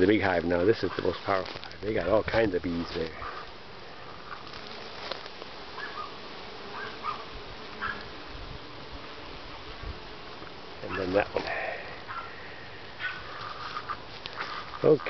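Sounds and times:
honeybees buzzing: 0:00.0 - 0:15.0.

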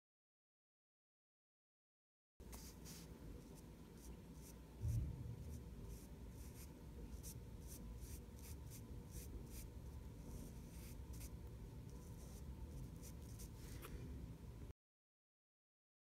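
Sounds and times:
low thump: 0:04.8 - 0:05.5.

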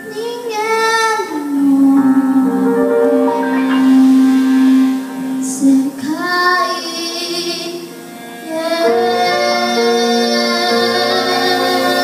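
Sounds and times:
girl singing a ballad: 0:00.0 - 0:03.3, 0:05.4 - 0:12.0
piano accompaniment: 0:00.0 - 0:12.0.

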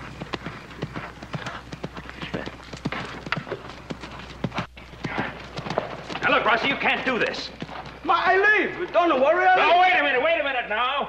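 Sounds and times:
horse hoofbeats on dirt: 0:00.0 - 0:09.6.

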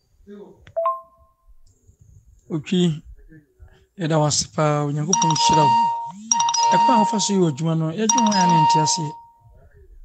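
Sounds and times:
person talking: 0:04.1 - 0:09.2
steady electronic beep tone: 0:05.1 - 0:09.4.

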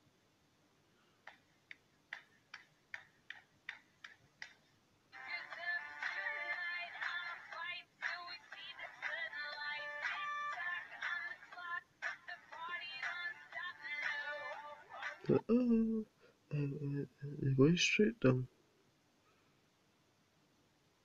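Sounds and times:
sharp evenly spaced clicks: 0:01.2 - 0:15.4
melodic music through phone speaker: 0:05.2 - 0:15.9.

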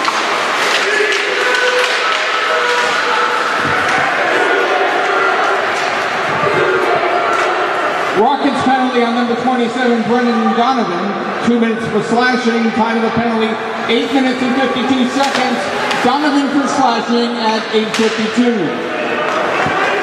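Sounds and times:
crowd chatter: 0:00.0 - 0:20.0
man announcing over public address: 0:08.2 - 0:18.9.

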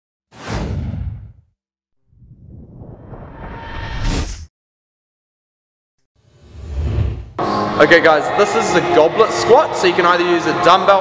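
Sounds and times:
whoosh with deep rumble: 0:02.0 - 0:04.4.

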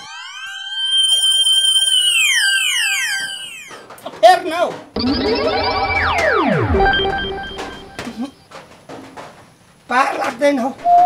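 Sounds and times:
electronic siren-like comic effect: 0:00.0 - 0:03.9, 0:05.0 - 0:08.3.

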